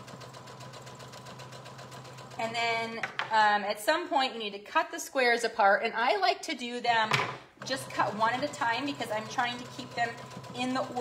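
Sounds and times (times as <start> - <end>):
sewing machine motor hum: 0.0 - 3.0, 7.6 - 11.0.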